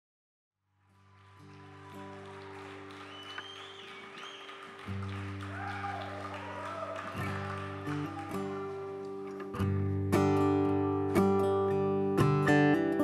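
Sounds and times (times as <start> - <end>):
audience whistling and cheering: 0.9 - 9.5.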